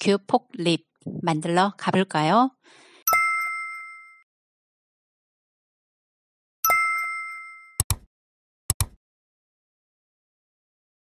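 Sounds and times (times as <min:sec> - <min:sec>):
bell-like ding: 0:03.1 - 0:04.2, 0:06.6 - 0:07.8.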